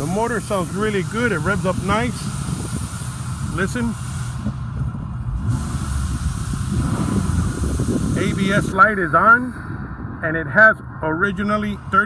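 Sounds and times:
car engine revving: 5.2 - 9.0.

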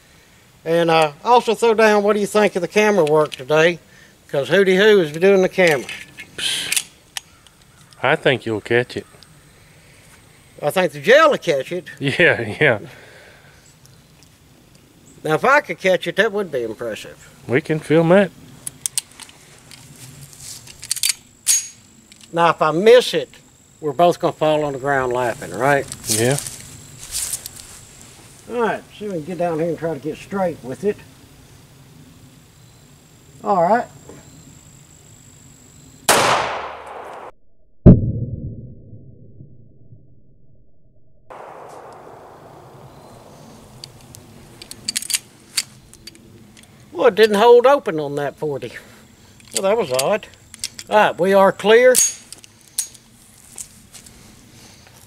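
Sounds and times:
pistol handling noise: 5.6 - 8.0, 18.6 - 19.9, 20.6 - 22.4, 43.7 - 46.8, 49.3 - 50.9, 51.9 - 54.1
pistol clicks: 41.4 - 42.2
pistol metallic clicks: 41.4 - 42.2, 43.7 - 46.7, 49.4 - 50.9.

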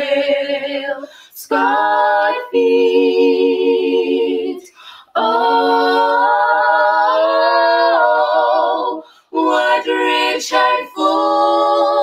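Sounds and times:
women singing in harmony: 0.0 - 12.0.

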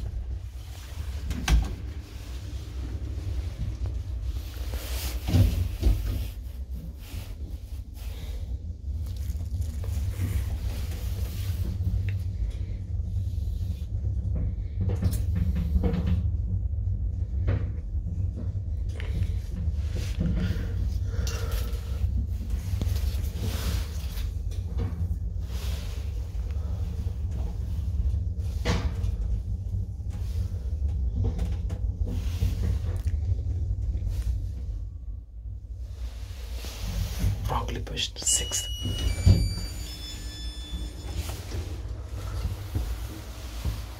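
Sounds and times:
elevator car rumbling: 0.0 - 43.9.

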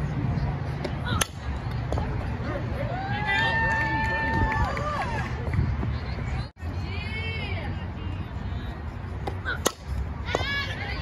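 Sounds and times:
bat hitting softball: 0.8 - 2.1, 9.2 - 10.6.

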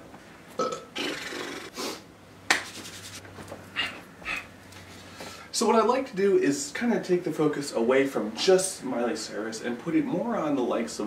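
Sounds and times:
man's burp-like vocal sound: 0.6 - 1.7
breathy hissing: 3.8 - 5.5.

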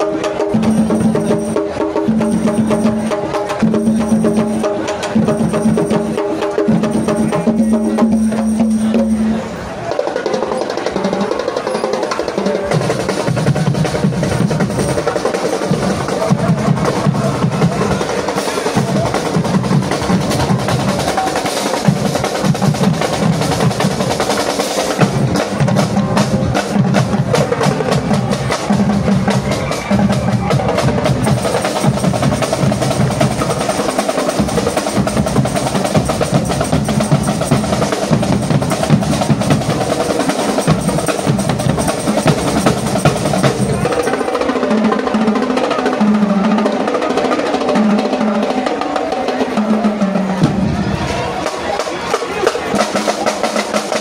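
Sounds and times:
snare drum rolls: 0.0 - 54.0
tenor drums: 0.0 - 54.0.

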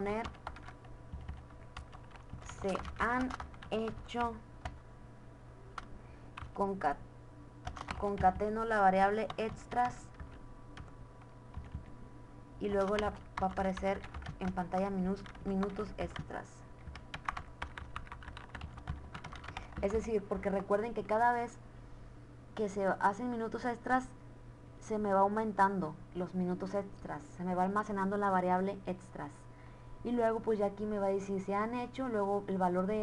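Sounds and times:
computer keyboard keys clicking: 0.2 - 4.8, 5.8 - 6.6, 7.6 - 8.6, 11.5 - 11.9, 12.7 - 20.0.

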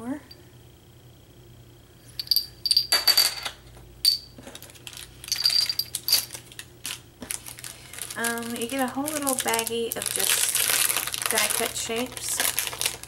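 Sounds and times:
plastic packaging rustling: 4.4 - 13.0.

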